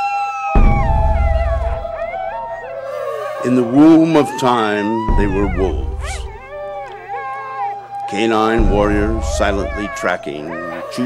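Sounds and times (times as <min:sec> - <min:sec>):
dogs howling in chorus: 0:00.0 - 0:11.0
deep rumble: 0:00.6 - 0:02.6, 0:05.1 - 0:06.6, 0:08.6 - 0:10.0.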